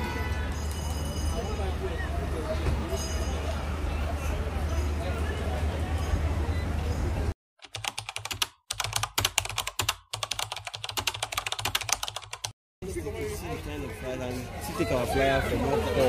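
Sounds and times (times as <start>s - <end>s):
street ambience: 0.0s - 7.4s, 10.4s - 16.0s
keyboard typing clicks: 7.6s - 12.5s.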